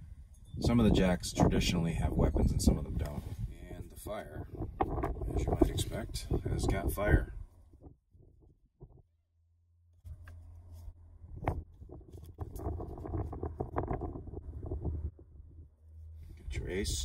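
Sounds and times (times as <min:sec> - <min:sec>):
wind rumbling on microphone: 0:00.0 - 0:09.0, 0:10.8 - 0:17.0
playing cards rustling and clicking: 0:10.0 - 0:13.8.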